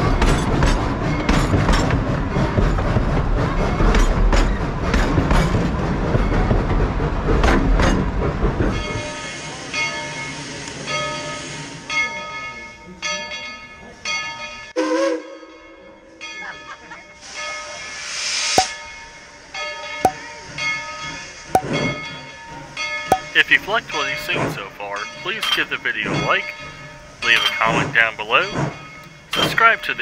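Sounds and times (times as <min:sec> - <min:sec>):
locomotive bell ringing: 0:08.7 - 0:14.8, 0:15.4 - 0:17.9, 0:18.6 - 0:30.0
steam hissing: 0:17.2 - 0:18.8.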